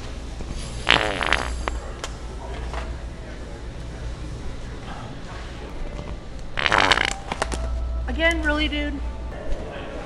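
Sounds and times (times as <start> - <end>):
fart toy sputtering: 0.8 - 1.7, 6.6 - 7.2.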